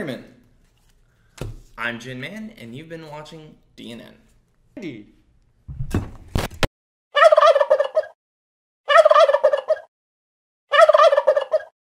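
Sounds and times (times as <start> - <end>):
turkey gobbling: 7.2 - 8.2, 8.9 - 9.9, 10.7 - 11.7.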